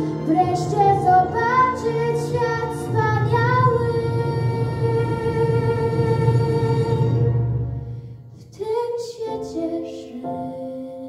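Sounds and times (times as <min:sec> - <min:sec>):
girl singing into a microphone: 0:00.0 - 0:07.1, 0:08.4 - 0:11.0
backing track music: 0:00.0 - 0:11.0.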